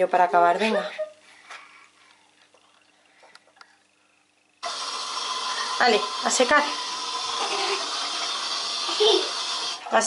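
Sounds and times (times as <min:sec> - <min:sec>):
water running from sink tap: 0:04.6 - 0:10.0.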